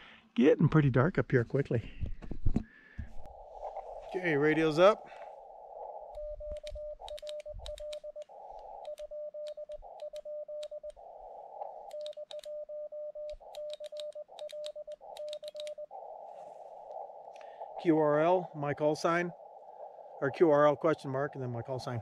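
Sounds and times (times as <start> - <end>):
radio band noise hiss: 3.2 - 6.1, 15.9 - 22.0
morse code tone: 11.8 - 16.0.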